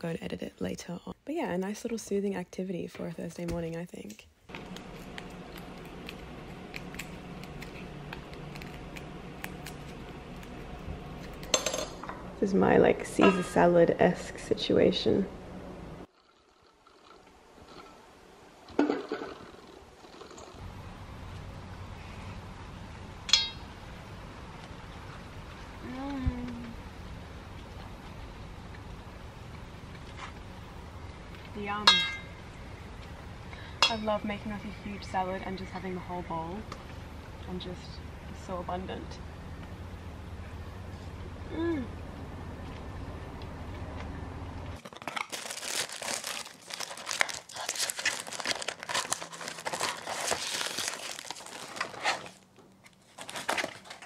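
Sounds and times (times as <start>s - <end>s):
low steady rumble: 4.5s - 16.1s, 20.6s - 44.8s
person humming: 25.8s - 26.8s, 41.4s - 42.0s
packaging crinkling and rustling: 44.8s - 54.0s.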